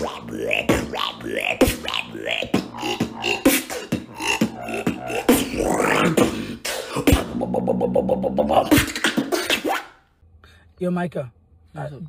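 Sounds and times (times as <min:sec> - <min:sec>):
person beatboxing: 0:00.0 - 0:10.0.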